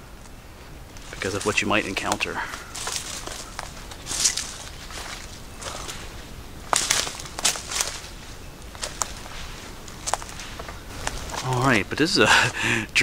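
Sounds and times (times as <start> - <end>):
footsteps on leaf litter: 1.0 - 12.6.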